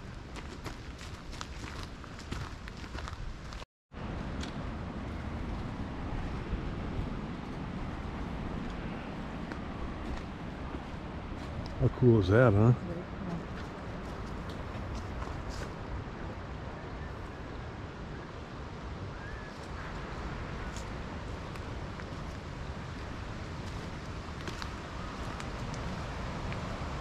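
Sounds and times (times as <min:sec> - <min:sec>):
footsteps on dirt trail: 0:00.0 - 0:03.6, 0:04.3 - 0:11.8, 0:23.0 - 0:25.9.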